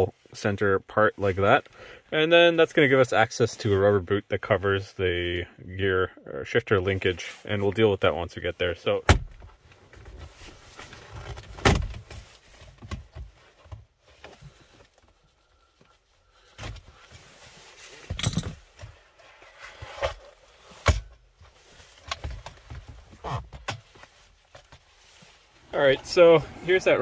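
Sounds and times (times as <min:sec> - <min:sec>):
handling rustle and clicks: 0:09.5 - 0:27.0.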